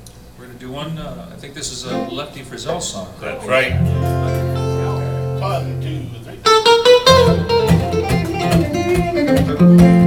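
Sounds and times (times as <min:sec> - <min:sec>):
electric guitar lead with bent notes: 0:01.9 - 0:02.3, 0:03.2 - 0:10.0
held guitar chord ringing: 0:01.9 - 0:02.4, 0:03.3 - 0:10.0
strummed acoustic guitar: 0:03.3 - 0:10.0.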